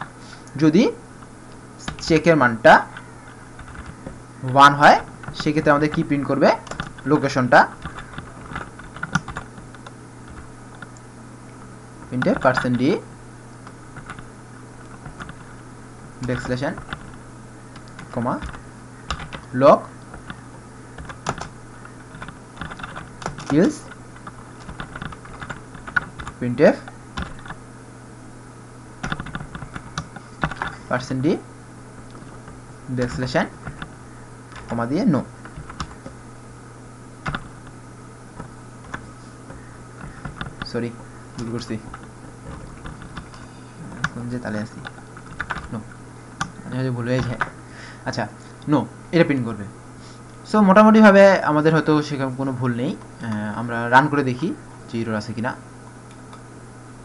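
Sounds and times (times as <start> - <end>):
steady low hum: 0.0 - 57.0
computer keyboard typing: 2.9 - 11.0, 13.6 - 15.6, 16.2 - 27.6, 29.0 - 30.8, 32.1 - 36.2, 37.2 - 37.7, 38.4 - 47.6.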